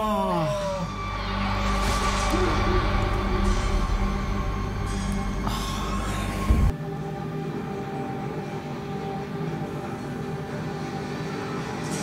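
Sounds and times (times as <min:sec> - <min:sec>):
droning score tones: 0:00.9 - 0:12.0.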